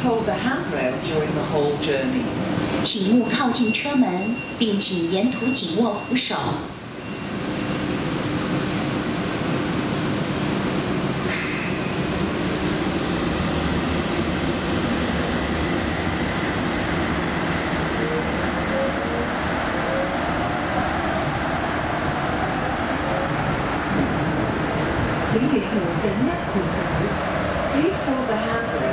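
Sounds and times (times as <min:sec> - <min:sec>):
train rumble and hiss: 0:00.0 - 0:28.9.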